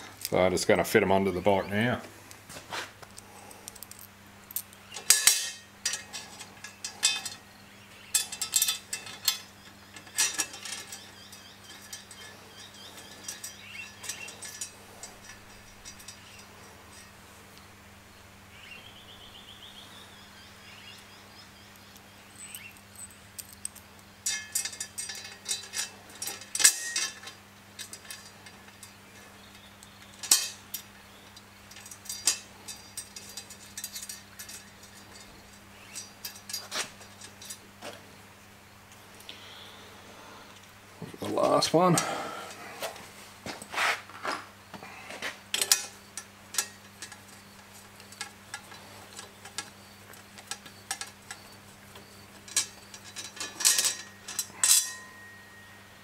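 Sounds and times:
small metal hardware clinking: 3.1s - 17.2s, 21.7s - 38.0s, 45.5s - 55.9s.

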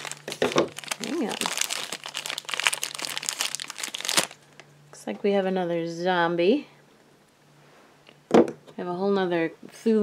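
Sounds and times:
plastic wrapper crinkling: 0.0s - 4.7s.

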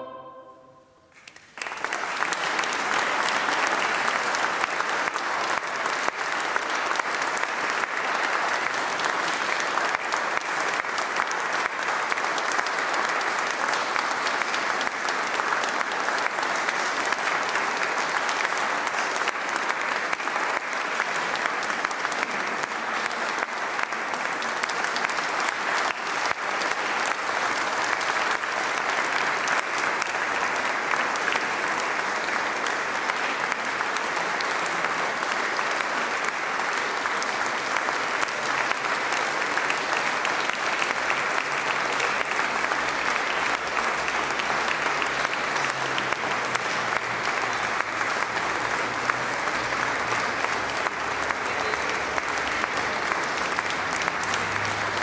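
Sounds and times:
audience applauding: 1.1s - 55.0s.

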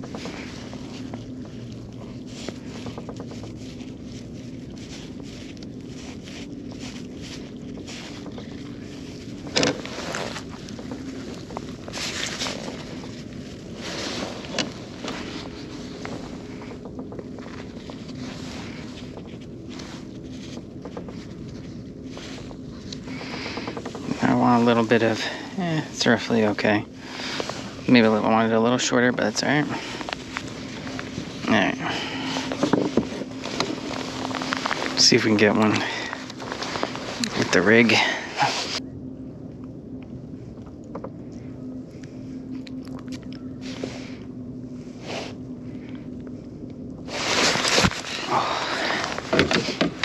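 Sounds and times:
low hum: 0.0s - 50.0s.

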